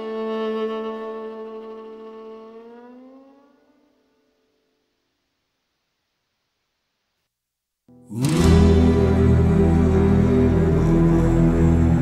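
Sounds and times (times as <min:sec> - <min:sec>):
bowed strings chord: 0:07.9 - 0:12.0.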